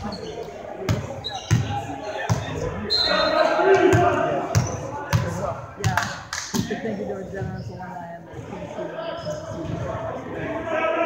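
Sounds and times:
players' voices and calls: 0:00.0 - 0:11.0.

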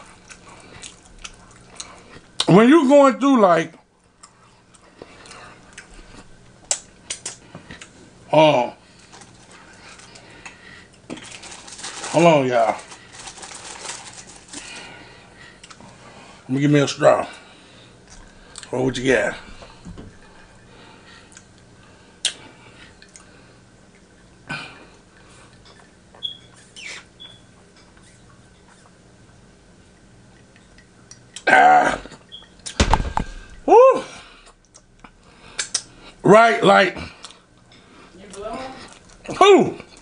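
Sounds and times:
straw squeaks: 0:26.1 - 0:29.0
chewing mouth clicks: 0:30.3 - 0:31.4, 0:34.6 - 0:35.9.

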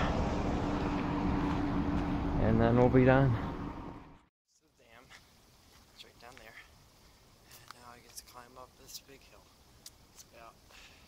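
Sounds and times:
outdoor noise rush: 0:00.0 - 0:11.0.

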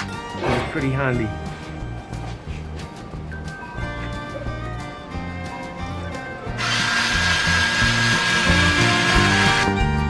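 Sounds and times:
background music: 0:00.0 - 0:10.0
power cutter cutting cloth: 0:06.6 - 0:09.8.

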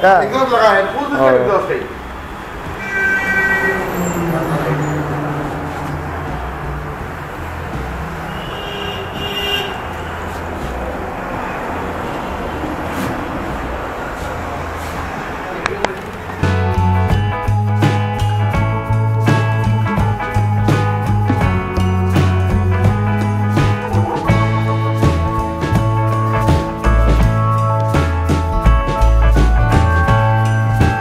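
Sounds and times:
engine and traffic rumble: 0:00.0 - 0:31.0
rock music: 0:16.4 - 0:31.0.

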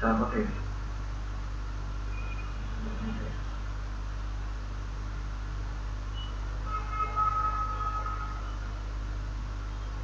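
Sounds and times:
low electrical hum: 0:00.0 - 0:10.0
faint pitched tone: 0:06.1 - 0:08.8.

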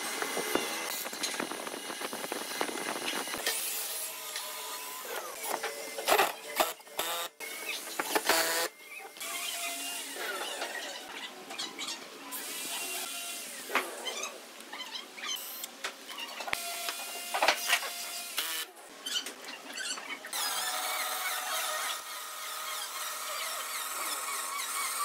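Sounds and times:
cordless drill running: 0:00.0 - 0:10.1, 0:16.6 - 0:18.7, 0:20.3 - 0:25.0.

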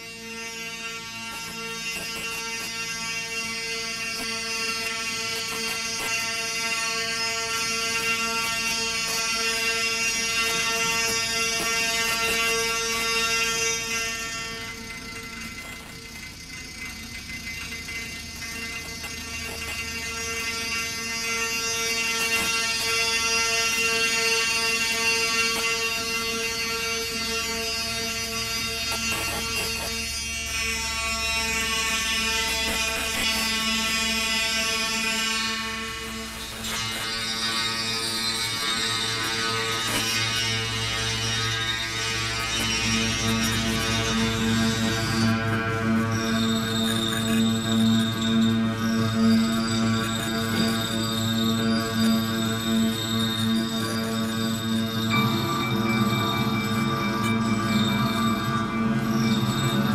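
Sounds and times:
sustained drone: 0:00.0 - 0:59.9.

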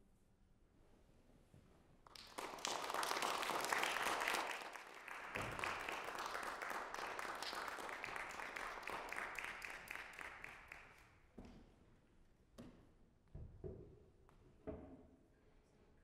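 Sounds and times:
audience applauding: 0:02.1 - 0:11.1.

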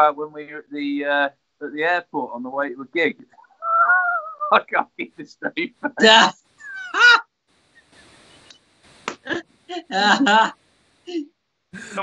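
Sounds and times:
high-pitched laughter: 0:03.6 - 0:07.2, 0:09.3 - 0:10.5.

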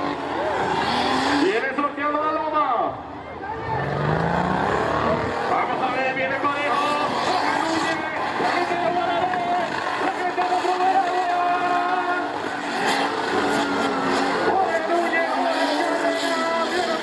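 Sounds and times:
engine revving hard: 0:00.0 - 0:01.8, 0:03.4 - 0:17.0
people's voices: 0:00.0 - 0:17.0.

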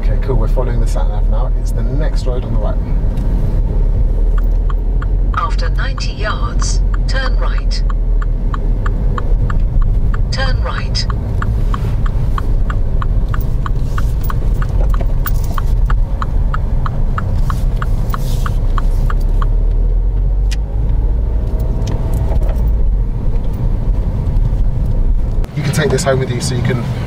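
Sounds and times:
turn indicator ticking: 0:00.0 - 0:26.8
car road and engine rumble: 0:00.0 - 0:27.0.

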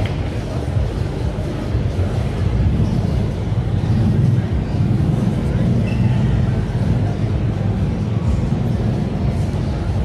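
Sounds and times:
low rumble of background noise: 0:00.0 - 0:10.0.

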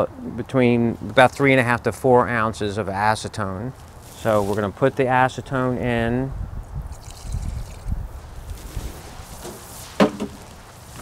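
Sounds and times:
wind rumble on microphone: 0:05.5 - 0:09.4
liquid trickling into bucket: 0:06.9 - 0:08.0.

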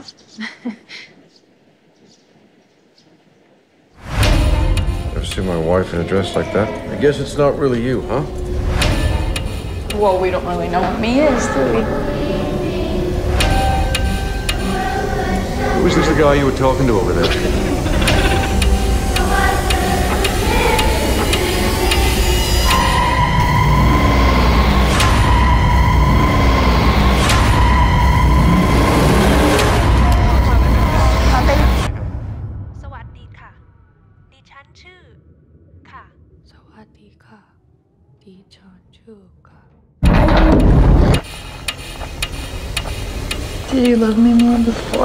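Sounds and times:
deep rumbling: 0:03.2 - 0:45.0
clock-like ticking: 0:04.2 - 0:05.9, 0:08.0 - 0:12.0, 0:13.1 - 0:23.4, 0:40.6 - 0:45.0.

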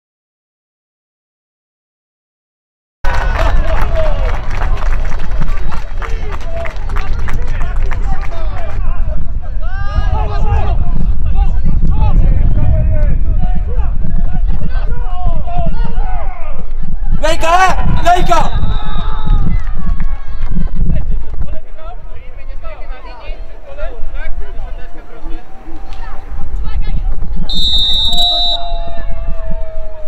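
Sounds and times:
low rumble on microphone: 0:03.1 - 0:30.0.

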